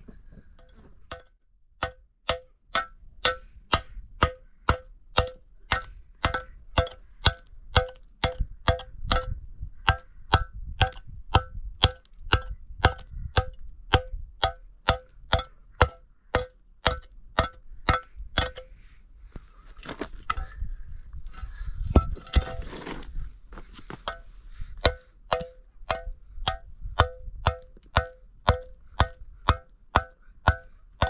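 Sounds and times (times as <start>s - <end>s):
hatchet chipping concrete: 1.8s - 9.3s, 9.9s - 18.6s, 24.8s - 30.8s.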